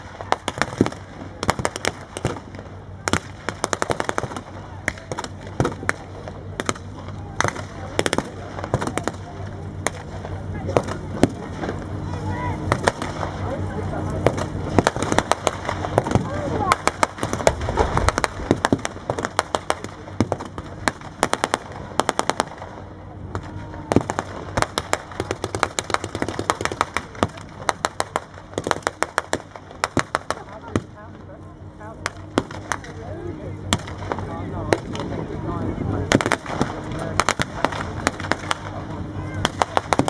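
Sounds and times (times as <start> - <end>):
tank engine running: 0.0 - 40.0.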